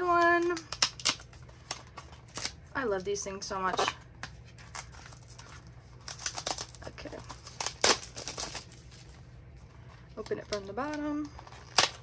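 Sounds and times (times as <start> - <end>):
low room hum: 0.0 - 12.0
cellophane rustling: 4.5 - 12.0.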